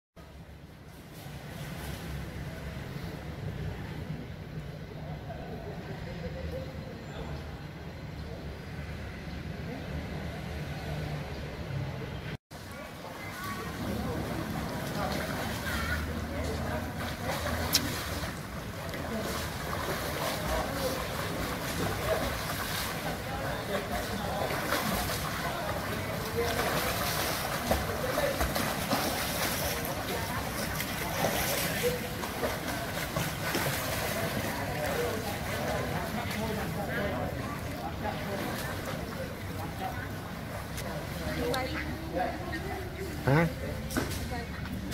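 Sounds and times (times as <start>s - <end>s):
swimmers splashing in a pool: 0.9s - 4.3s, 12.6s - 44.9s.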